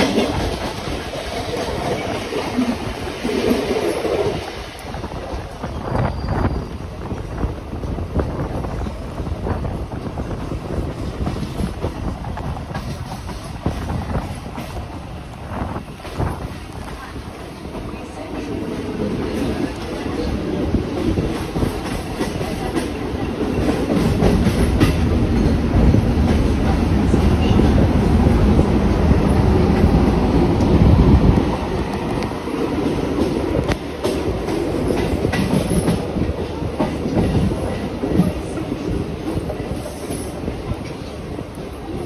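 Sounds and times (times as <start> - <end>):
train wheels rumbling: 0.0 - 42.0.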